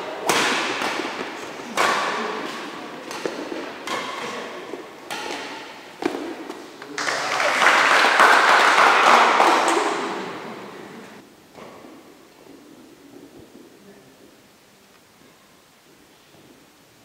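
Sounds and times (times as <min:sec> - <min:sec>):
racket striking shuttlecock: 0:00.1 - 0:06.8, 0:09.0 - 0:10.3
spectators applauding: 0:07.0 - 0:10.5.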